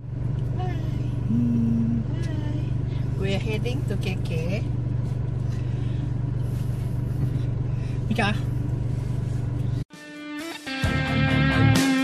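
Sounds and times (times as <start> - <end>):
vehicle engine and road noise: 0.0 - 9.9.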